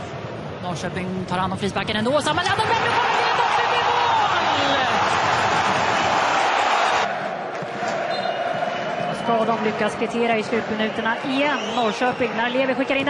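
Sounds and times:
stadium crowd cheering: 2.4s - 13.0s.

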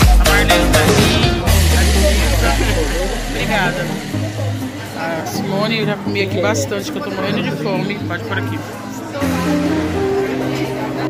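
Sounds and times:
dance music bass note: 0.0s - 6.2s.

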